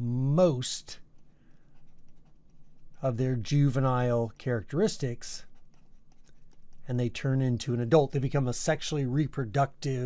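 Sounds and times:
stylus scratching and tapping: 0.9 - 8.8.

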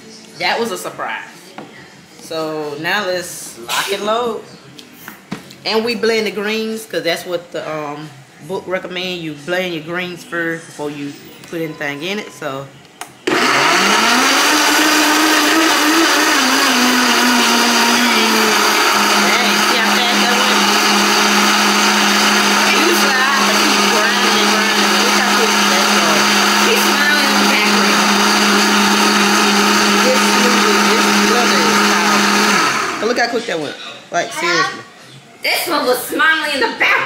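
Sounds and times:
blender running: 13.2 - 33.2.

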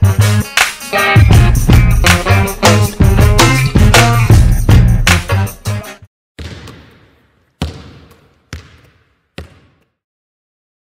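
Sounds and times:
basketball bouncing on hard court: 6.4 - 10.0.

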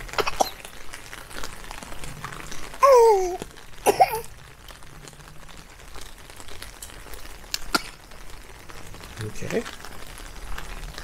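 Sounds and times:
faint rain: 0.0 - 11.0.

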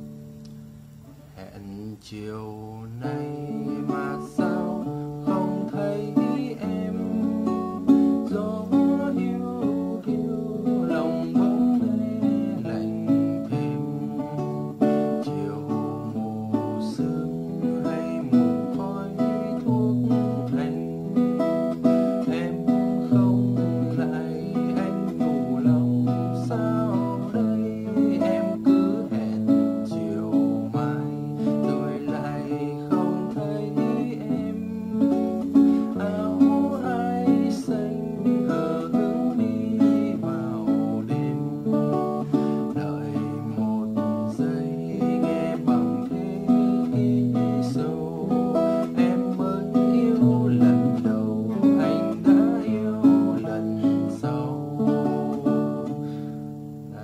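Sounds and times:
fingerpicked acoustic guitar: 0.0 - 57.0.

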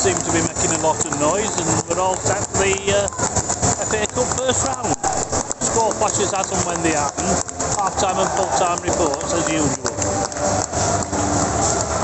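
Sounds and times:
man talking: 0.0 - 3.2, 3.8 - 10.0
stadium crowd noise: 0.0 - 12.0.

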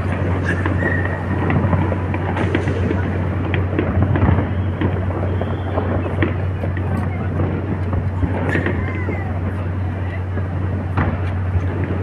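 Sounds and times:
distant fireworks bursting and crackling: 0.0 - 12.0
low rumble: 0.0 - 12.0
sharp firework bangs: 0.0 - 12.0.

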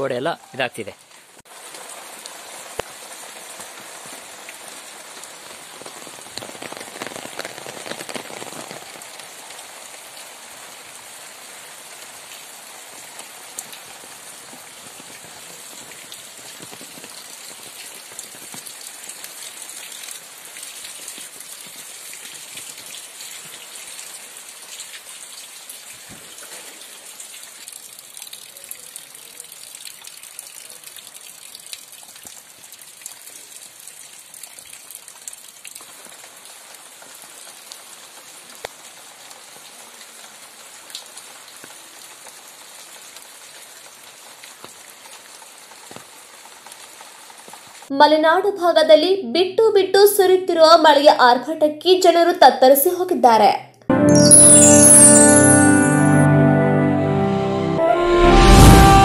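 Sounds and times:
steady rain: 0.0 - 51.2
raindrops ticking: 0.9 - 11.2, 11.9 - 23.7, 27.2 - 37.8.

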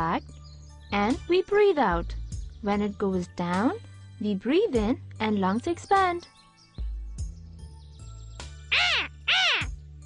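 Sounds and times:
quiet background music: 0.0 - 10.0
cartoon parrot squawking: 8.7 - 9.7.

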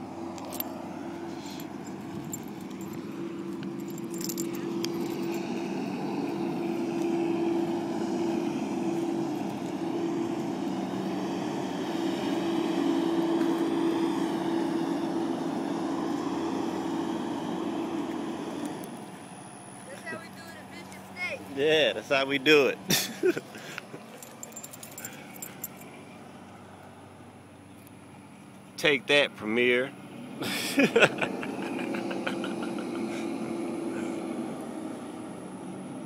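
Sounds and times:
diesel truck engine running: 0.0 - 36.0.

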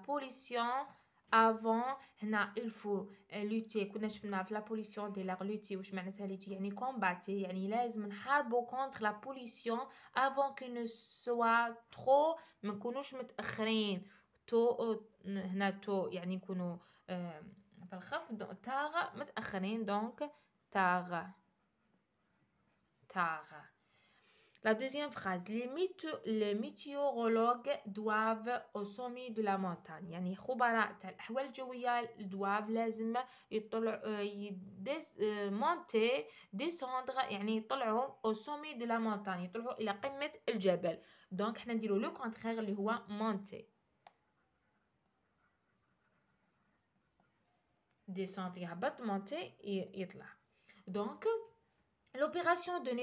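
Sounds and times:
pen scratching on paper: 21.2 - 23.5, 44.1 - 47.7.

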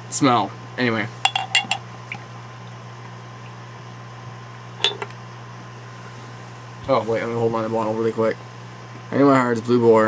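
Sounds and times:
low background hum: 0.0 - 10.0
glass mug tapping: 1.3 - 1.8, 4.8 - 5.1.

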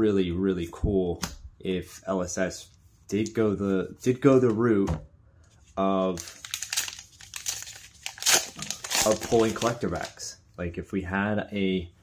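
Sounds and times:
foil wrapper crinkling and tearing: 6.2 - 10.3.

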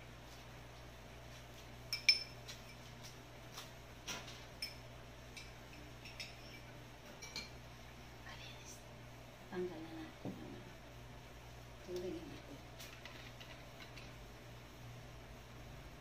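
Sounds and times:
spoon and glasses clinking: 1.9 - 2.8, 4.6 - 7.6.

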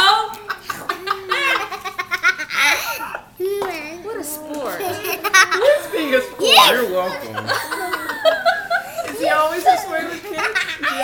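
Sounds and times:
small child giggling: 0.6 - 3.6, 4.7 - 9.1.

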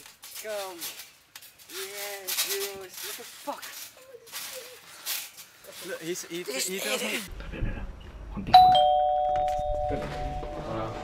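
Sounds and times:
young men calling out: 5.8 - 7.3.

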